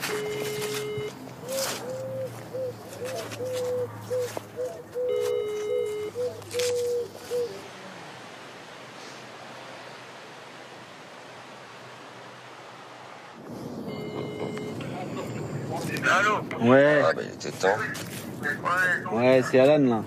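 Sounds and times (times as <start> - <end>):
telephone ringback tone: 0.0 - 1.2, 5.0 - 6.3, 13.9 - 14.9
pigeon cooing: 0.1 - 7.8.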